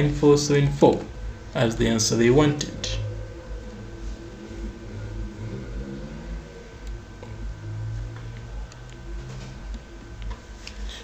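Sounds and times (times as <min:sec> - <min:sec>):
faint high whine: 0:00.0 - 0:11.0
low steady hum: 0:00.0 - 0:11.0.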